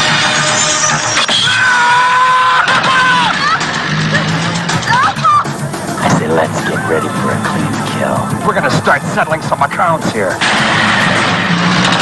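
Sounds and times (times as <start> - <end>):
loud trailer music: 3.1 - 12.0
action sound effects: 5.7 - 12.0.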